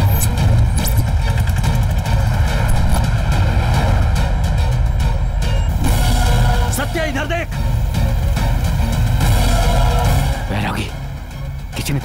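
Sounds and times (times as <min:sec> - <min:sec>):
background music: 0:00.0 - 0:12.0
loud low rumble: 0:00.3 - 0:07.0.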